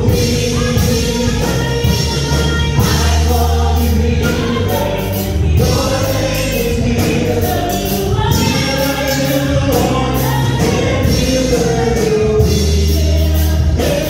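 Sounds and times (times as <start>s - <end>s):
bass line: 0.0s - 14.0s
gospel group singing in harmony: 0.0s - 14.0s.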